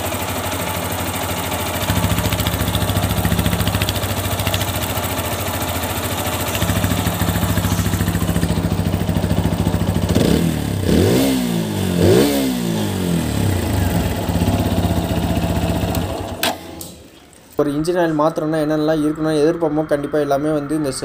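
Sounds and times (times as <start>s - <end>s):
engine revving: 0.0s - 16.4s
motorcycle engine idling: 0.0s - 16.4s.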